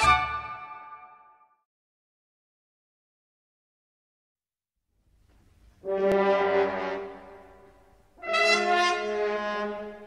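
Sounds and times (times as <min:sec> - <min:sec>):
loud held brass note: 0:05.8 - 0:10.0.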